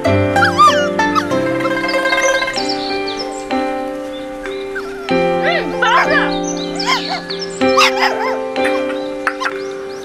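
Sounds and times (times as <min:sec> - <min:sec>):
background music with held chords: 0:00.0 - 0:10.0
dog yipping: 0:00.4 - 0:02.7, 0:04.6 - 0:09.6.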